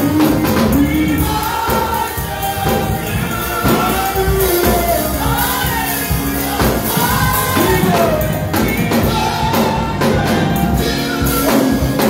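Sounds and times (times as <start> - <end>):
gospel group singing: 0.0 - 12.0
instrumental accompaniment: 0.0 - 12.0.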